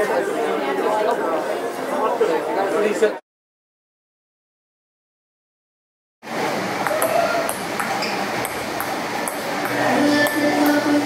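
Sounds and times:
steady background noise: 0.0s - 3.2s, 6.3s - 11.0s.

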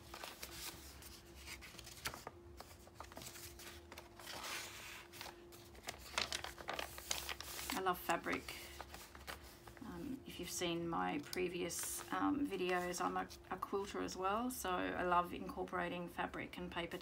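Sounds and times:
paper rustling and crinkling: 0.0s - 10.1s
faint steady hum: 0.0s - 17.0s.

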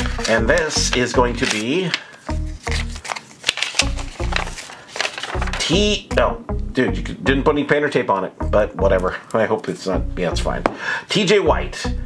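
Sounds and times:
background music with bass note: 0.0s - 1.6s, 2.3s - 3.0s, 5.4s - 10.8s, 11.5s - 12.0s
paper envelope rustling and crackling: 0.0s - 5.8s
sharp paper clicks: 1.4s - 5.6s.

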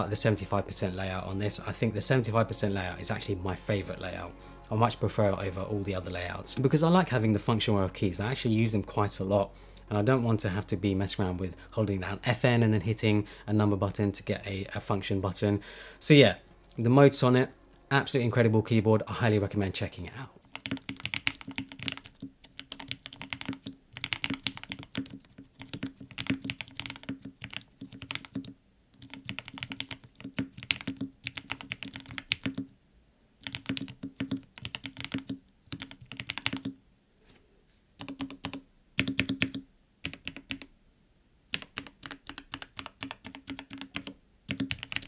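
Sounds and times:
mechanical keyboard typing: 20.5s - 32.7s, 33.4s - 36.8s, 38.0s - 40.7s, 41.5s - 45.0s.

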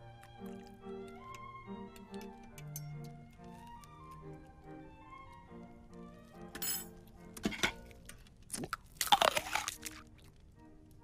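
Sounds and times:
soft orchestral music: 0.0s - 11.0s
noisy eating and slurping: 7.8s - 10.4s.

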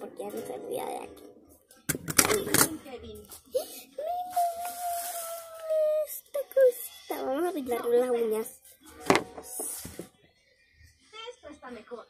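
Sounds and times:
rustle of small item handled: 4.3s - 5.8s.

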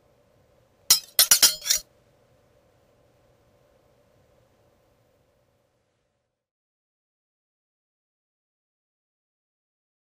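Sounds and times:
glassy clinks: 0.9s - 1.8s.

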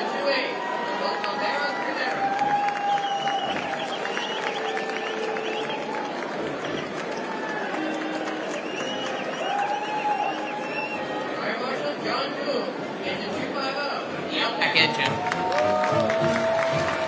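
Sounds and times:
crowd voices: 0.0s - 17.0s
hand claps: 2.0s - 10.9s, 15.2s - 17.0s.

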